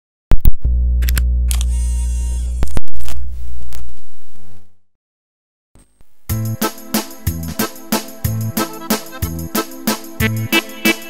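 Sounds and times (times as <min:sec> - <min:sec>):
deep electronic hum: 0:00.4 - 0:03.7
sharp clicks: 0:01.0 - 0:01.8.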